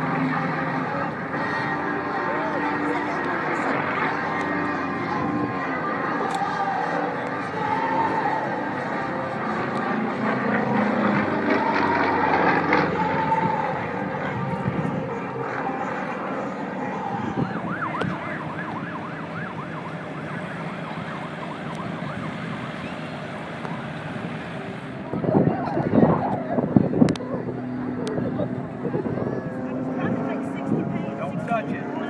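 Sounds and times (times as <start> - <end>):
propeller airplane engine: 8.1 - 32.0.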